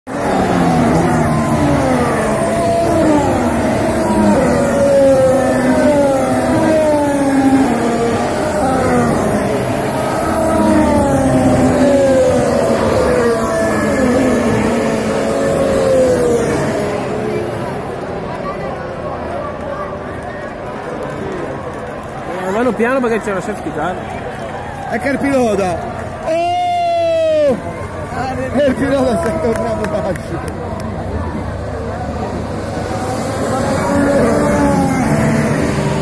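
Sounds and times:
racing car engines at high revs: 0.1s - 26.2s, 27.1s - 36.0s.

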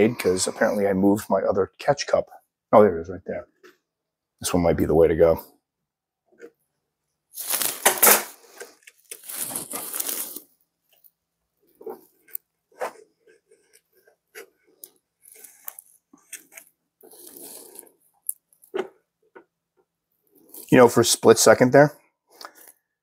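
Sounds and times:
plastic bottle crinkling and scraping: 7.4s - 19.0s
light clicks and scrapes: 11.8s - 18.9s.

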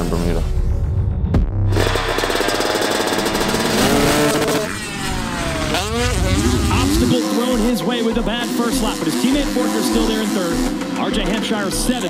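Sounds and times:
motocross bike engines revving: 1.8s - 12.0s.

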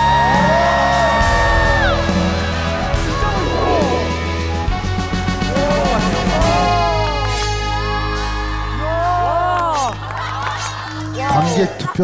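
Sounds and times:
steady deep bass: 0.0s - 10.1s.

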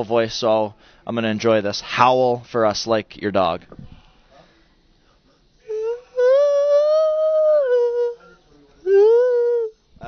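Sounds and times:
man imitating dog howl: 5.7s - 8.2s, 8.9s - 9.7s.

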